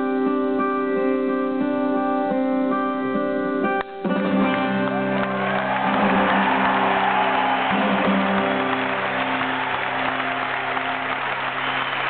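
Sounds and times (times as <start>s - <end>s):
audience cheering: 4.5s - 12.0s.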